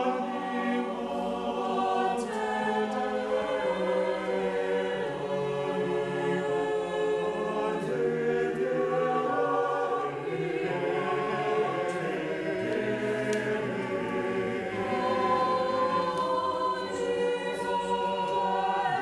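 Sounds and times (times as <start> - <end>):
choir singing sustained chords: 0.0 - 19.0.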